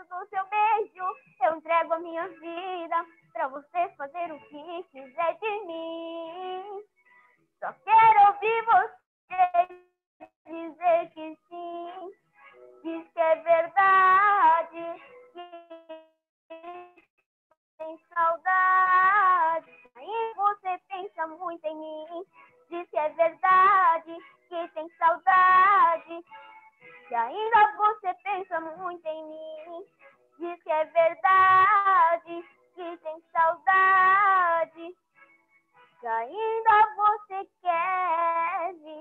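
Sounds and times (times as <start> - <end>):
boy singing pop song: 7.6 - 9.8, 30.4 - 34.9, 36.0 - 39.0.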